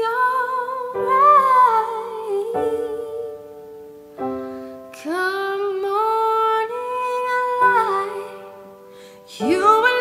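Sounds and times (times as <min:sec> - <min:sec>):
woman singing: 0:00.0 - 0:03.9, 0:04.8 - 0:10.0
gentle piano: 0:00.0 - 0:10.0.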